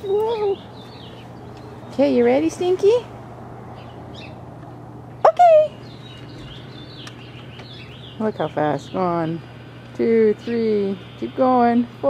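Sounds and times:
small birds chirping: 0:00.0 - 0:12.0
steady low hum: 0:00.0 - 0:12.0
high-pitched rising vocal call: 0:05.2 - 0:05.8.

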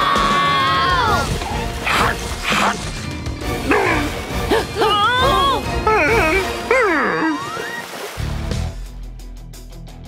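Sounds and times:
cartoon background music: 0:00.0 - 0:09.1.

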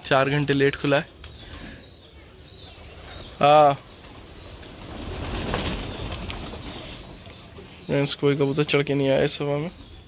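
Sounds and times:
pigeon wings flapping: 0:04.0 - 0:06.8.

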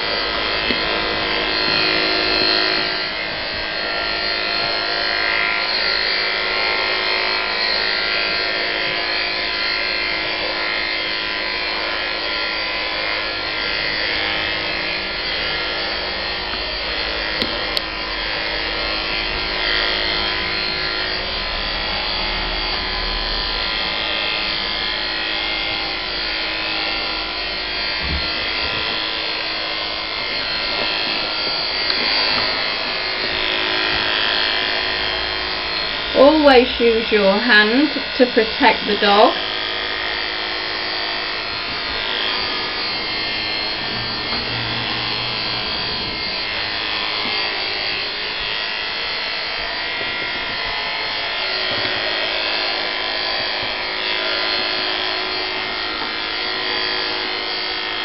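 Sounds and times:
electric clippers running: 0:00.0 - 0:58.0.

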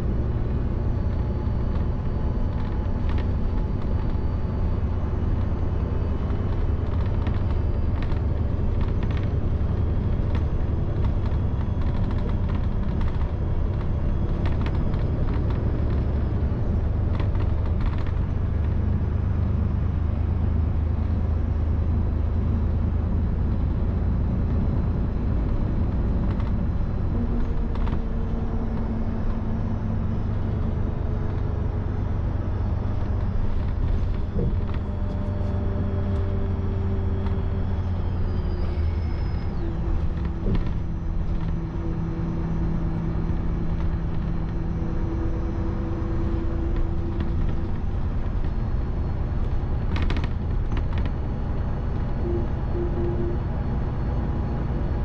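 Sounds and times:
bus engine and road rumble: 0:00.0 - 0:55.0.

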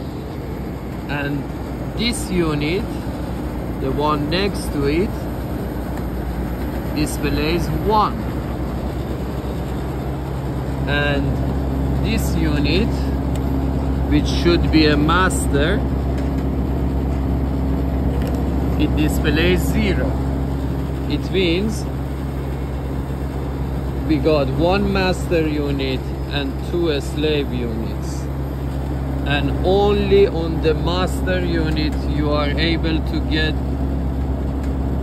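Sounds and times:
condensing units humming: 0:00.0 - 0:35.0
low drone: 0:00.0 - 0:35.0.

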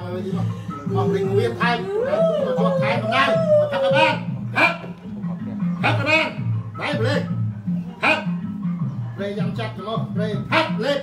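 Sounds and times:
woman crying: 0:00.7 - 0:04.2
woman wailing: 0:00.9 - 0:04.2.

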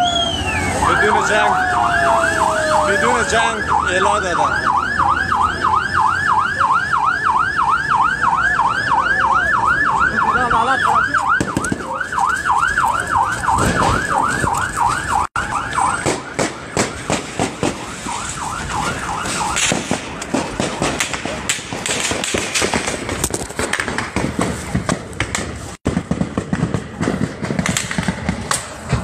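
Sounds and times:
electronic siren yelping: 0:00.0 - 0:21.5
sharp cracks and knocks: 0:15.7 - 0:29.0.

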